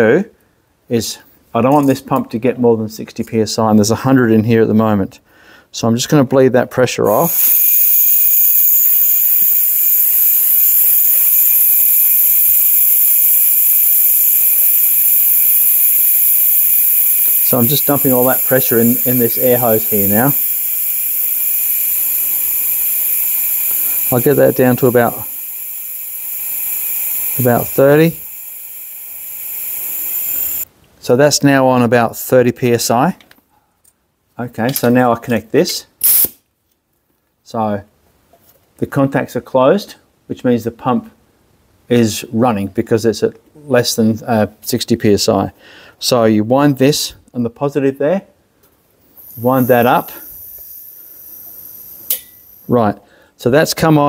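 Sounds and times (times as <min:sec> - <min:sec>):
compressed air hissing from hose: 0:07.1 - 0:30.7, 0:36.0 - 0:36.4, 0:49.1 - 0:52.7.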